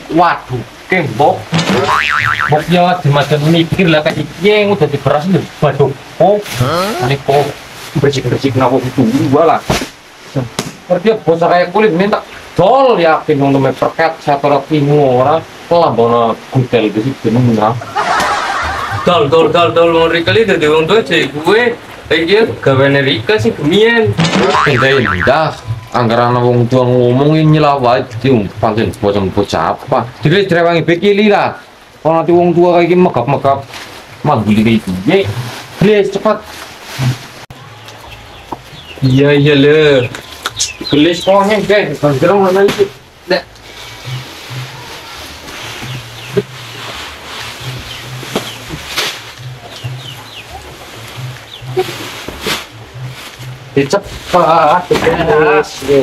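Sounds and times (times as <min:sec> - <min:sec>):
warbling pitched sound: 0:01.7 - 0:02.9, 0:22.6 - 0:26.2, 0:43.7 - 0:55.6
young man speaking: 0:06.4 - 0:07.6, 0:19.1 - 0:30.1
sharp knocks of sacks: 0:09.6 - 0:10.9, 0:48.3 - 0:49.4
background music with pulsing bass: 0:43.1 - 0:54.8.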